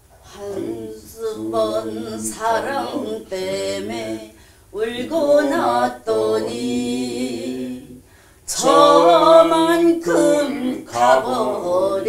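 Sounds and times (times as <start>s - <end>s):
person singing unaccompanied: 0.2s - 12.0s.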